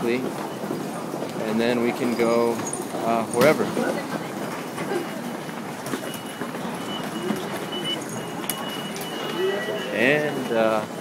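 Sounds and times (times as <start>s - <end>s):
footsteps of passengers: 0.0s - 11.0s
thin high electronic tone: 5.9s - 10.7s.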